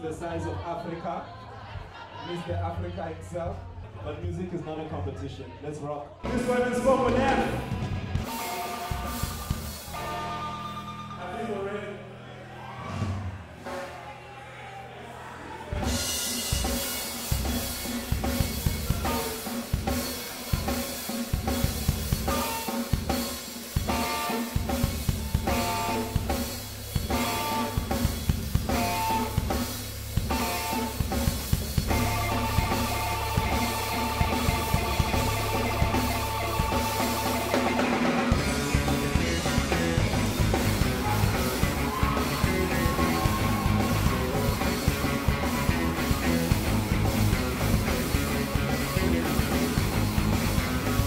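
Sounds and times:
bass guitar: 0:06.2 - 0:11.4, 0:15.7 - 0:23.2, 0:23.8 - 0:51.0
drum-kit beat: 0:06.3 - 0:10.2, 0:15.8 - 0:51.0
electric guitar: 0:23.8 - 0:51.0.

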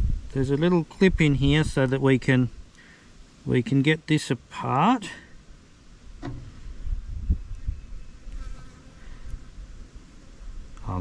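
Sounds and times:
insect buzzing: 0:05.5 - 0:10.8.

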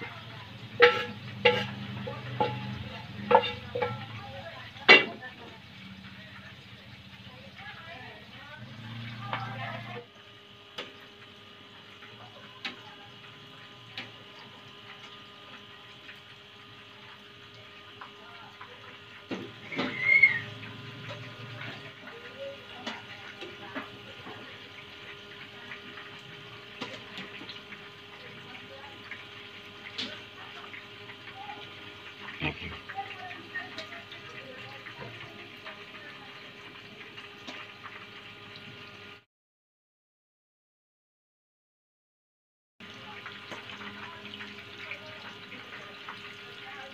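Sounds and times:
tofu sizzling in hot oil: 0:00.0 - 0:39.2, 0:42.8 - 0:46.9
utensils clicking against pan: 0:00.8 - 0:05.2.

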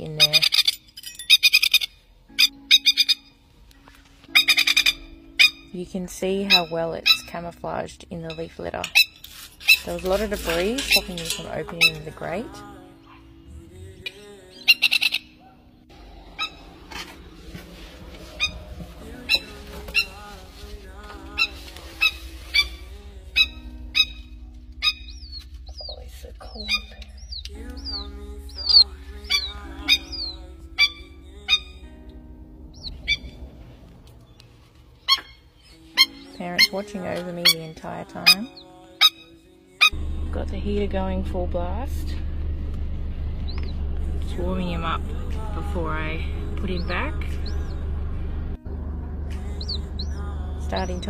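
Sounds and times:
plover calling high-pitched: 0:00.0 - 0:00.7, 0:01.4 - 0:03.3, 0:04.3 - 0:05.7, 0:14.5 - 0:15.6, 0:16.2 - 0:16.8, 0:18.2 - 0:20.3, 0:21.2 - 0:31.8, 0:32.8 - 0:33.4, 0:35.0 - 0:40.0, 0:44.8 - 0:47.9, 0:49.4 - 0:51.0.

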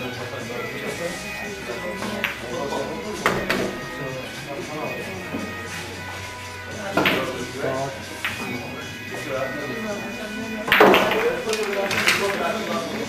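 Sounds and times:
background music: 0:00.0 - 0:13.0
pool balls clicking: 0:00.0 - 0:13.0
voices: 0:00.0 - 0:13.0.

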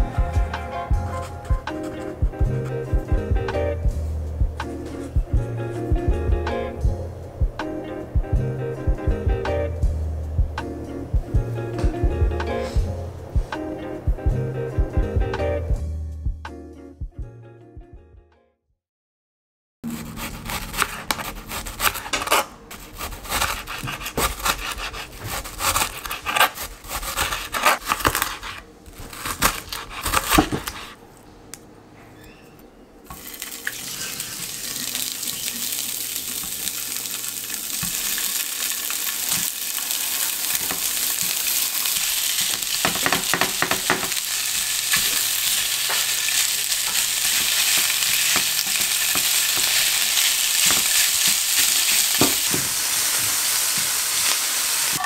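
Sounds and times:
knife slicing on cutting board: 0:19.9 - 0:31.0
spatula stirring in pan: 0:19.9 - 0:31.0
sausages sizzling in frying pan: 0:33.2 - 0:55.0.

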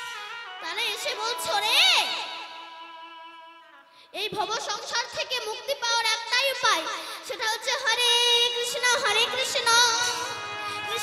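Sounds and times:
girl singing into microphone: 0:04.1 - 0:11.0.

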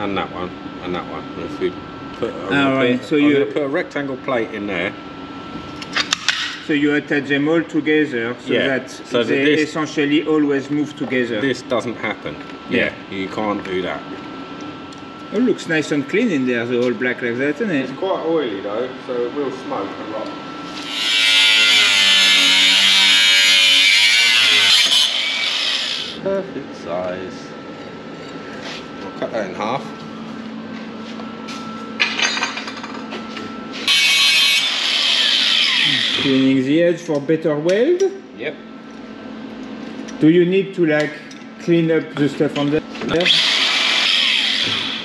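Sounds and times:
angle grinder cutting steel: 0:20.8 - 0:26.2, 0:33.8 - 0:36.4, 0:43.2 - 0:45.0.

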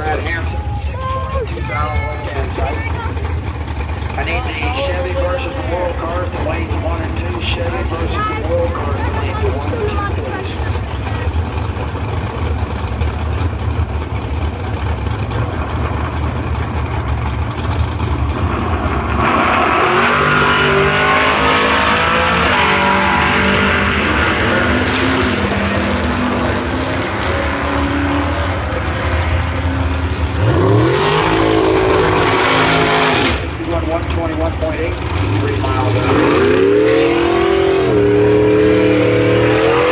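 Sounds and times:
drag racing engines: 0:00.0 - 0:39.9
engine revving: 0:01.6 - 0:39.9.

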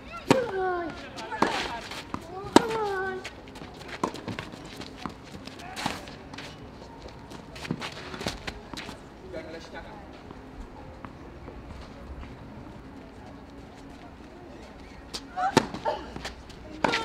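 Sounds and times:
tennis racket striking ball: 0:00.2 - 0:00.6, 0:01.2 - 0:03.0, 0:15.5 - 0:17.0.

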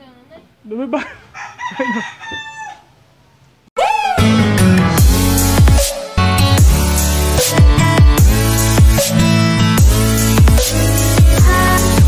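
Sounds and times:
rooster crowing: 0:01.2 - 0:03.0
electronic music with heavy beat: 0:04.2 - 0:12.0.

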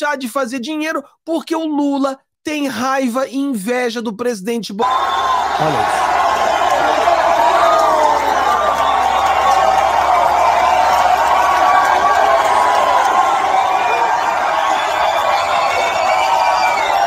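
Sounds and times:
crowd cheering and shouting: 0:04.8 - 0:17.0.

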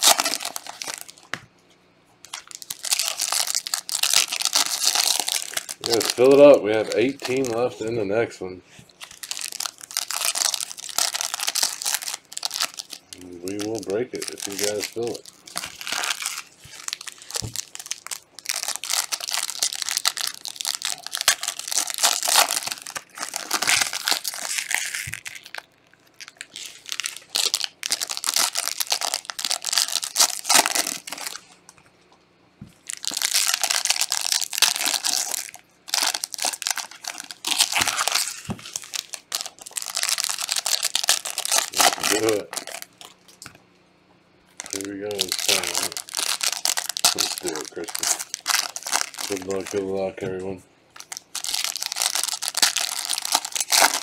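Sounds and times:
foil wrappers crinkling and tearing: 0:00.0 - 0:01.4, 0:02.2 - 0:08.1, 0:08.8 - 0:31.8, 0:32.8 - 0:43.6, 0:44.5 - 0:54.0.

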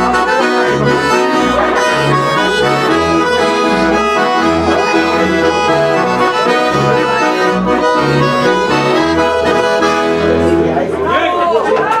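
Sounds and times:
accordion chord: 0:00.0 - 0:11.0.

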